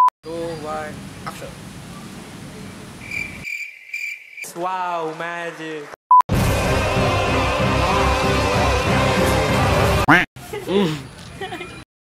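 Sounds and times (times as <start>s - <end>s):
cricket chirping trill: 3.0s - 4.5s.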